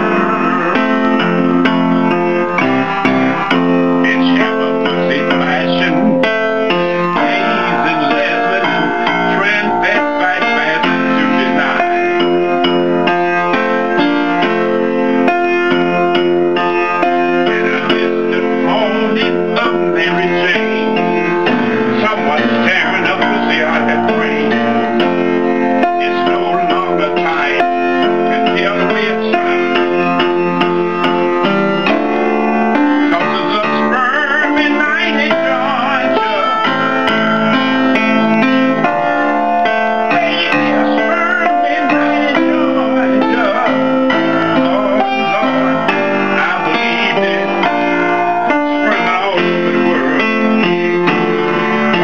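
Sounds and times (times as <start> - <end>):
person's voice: 0.0 - 14.6, 15.2 - 52.0
piano chords: 0.0 - 52.0.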